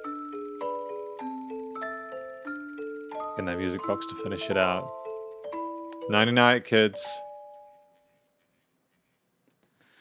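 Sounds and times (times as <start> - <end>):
music box bell-like tones: 0.0 - 7.8.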